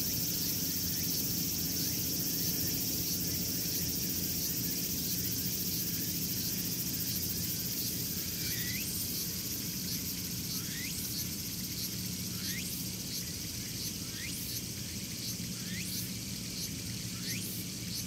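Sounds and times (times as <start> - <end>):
insects buzzing: 0.0 - 18.0.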